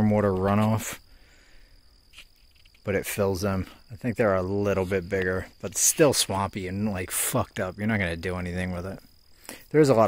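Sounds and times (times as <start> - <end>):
faint high-pitched whine: 0.0 - 10.0.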